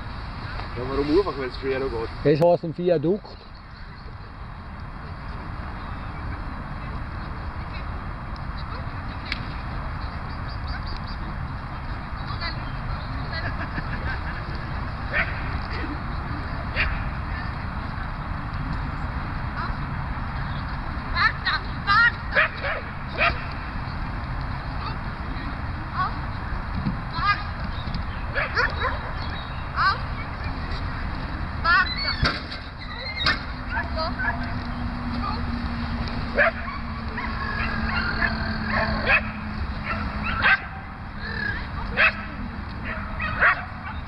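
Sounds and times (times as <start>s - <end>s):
low rumbling outdoor noise: 0.0s - 44.0s
dog barking: 22.3s - 23.4s, 36.4s - 40.8s, 42.0s - 44.0s.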